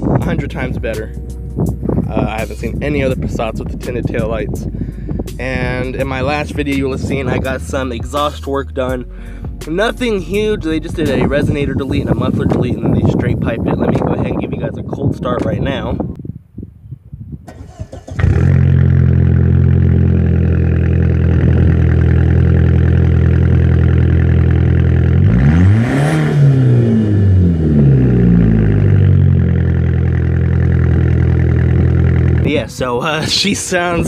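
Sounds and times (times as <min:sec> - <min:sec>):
engine cranking: 0:17.5 - 0:22.5
engine revving: 0:17.5 - 0:32.5
loud car engine idling: 0:18.2 - 0:25.5, 0:27.5 - 0:32.5.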